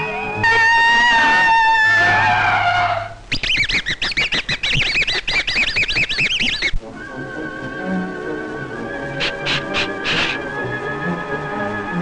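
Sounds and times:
high warbling squeaky chirping: 0:00.0 - 0:06.8, 0:08.9 - 0:10.5
cartoon music with falling slide: 0:03.4 - 0:12.0.

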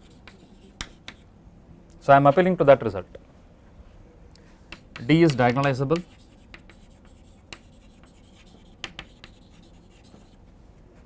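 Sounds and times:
chalk scratching on blackboard: 0:00.0 - 0:01.2, 0:04.7 - 0:10.4
chalk tapping on blackboard: 0:00.0 - 0:01.2, 0:04.7 - 0:10.4.

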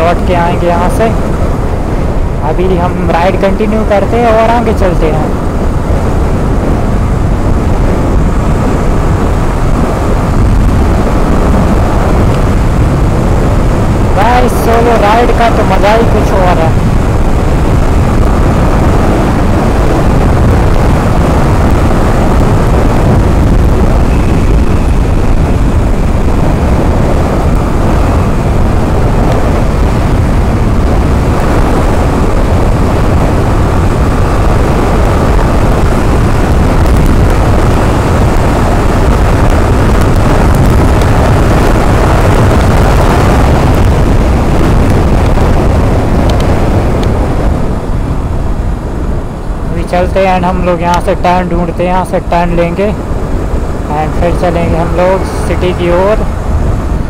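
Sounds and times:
wind rushing on microphone: 0:00.0 - 0:57.0.

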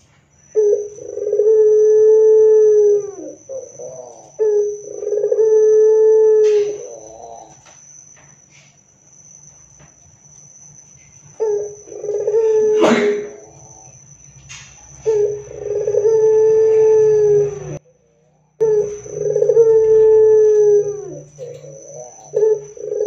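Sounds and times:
dove cooing loudly: 0:00.5 - 0:07.6, 0:11.4 - 0:13.8, 0:15.0 - 0:17.8, 0:18.6 - 0:23.0.

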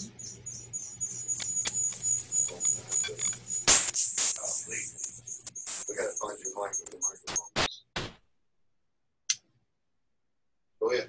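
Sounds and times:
high-pitched electronic whistle: 0:00.0 - 0:07.8
short burst of noise: 0:01.1 - 0:07.7.

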